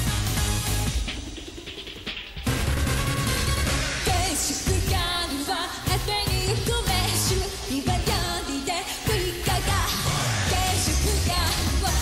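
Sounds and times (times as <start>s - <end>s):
pop backing track with bass beat: 0.0s - 12.0s
woman singing: 4.0s - 12.0s.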